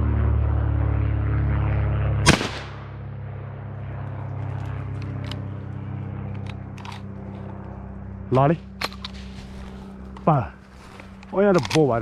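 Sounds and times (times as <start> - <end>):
steady low drone: 0.0 - 12.0
gunshot: 2.2 - 2.9.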